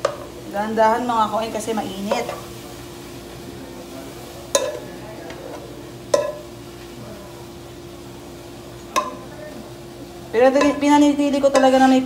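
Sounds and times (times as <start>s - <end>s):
metal spoon scraping pan: 10.5s - 12.0s.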